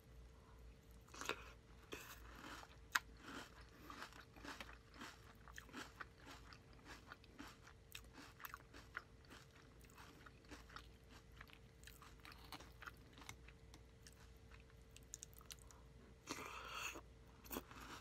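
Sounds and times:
faint steady hum: 0.0 - 18.0
chewing crunchy cereal: 1.0 - 18.0.

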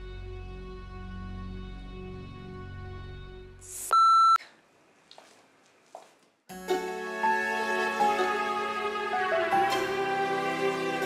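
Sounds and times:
background music: 0.0 - 3.7, 6.5 - 11.0.

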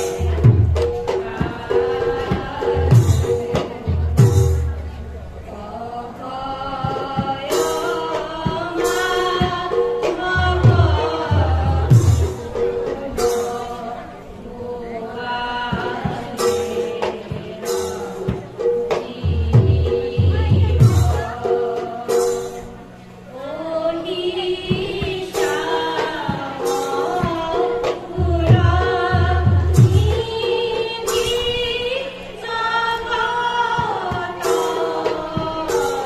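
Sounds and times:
group singing together: 0.0 - 4.0, 5.6 - 36.0
drum phrases: 0.0 - 36.0
harmonium: 0.0 - 36.0.

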